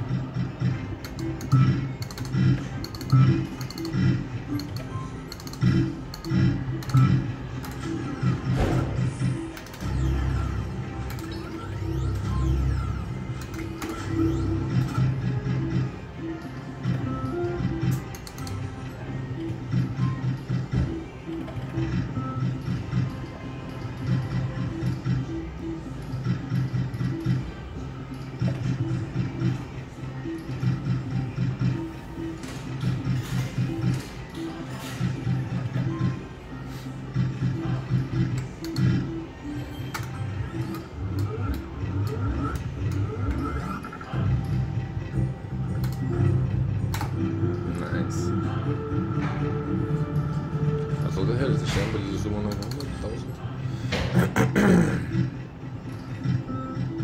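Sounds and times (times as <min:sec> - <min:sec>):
slot machine spin tones and jingles: 0:00.0 - 0:27.8.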